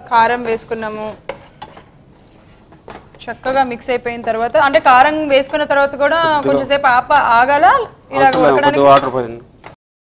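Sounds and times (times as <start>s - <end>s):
person talking: 6.1s - 6.8s, 7.7s - 9.2s.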